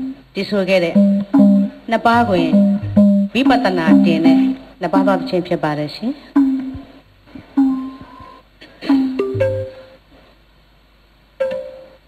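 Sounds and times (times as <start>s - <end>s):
plucked string notes: 1.0s - 5.4s.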